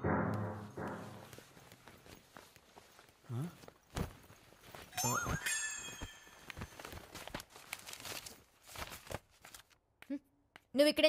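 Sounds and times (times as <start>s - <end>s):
book pages rustling: 1.6s - 4.9s, 5.8s - 9.9s
person speaking: 5.0s - 5.7s.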